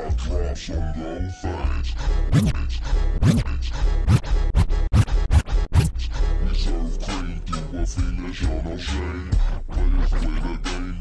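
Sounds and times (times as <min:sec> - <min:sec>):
slowed hip hop beat: 0:02.1 - 0:11.0
turntable scratching: 0:02.2 - 0:07.2, 0:08.0 - 0:11.0.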